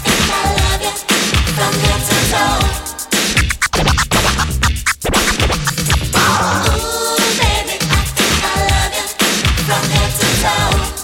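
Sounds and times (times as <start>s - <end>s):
dance beat: 0.1s - 9.8s
vinyl record scratching: 3.1s - 7.4s.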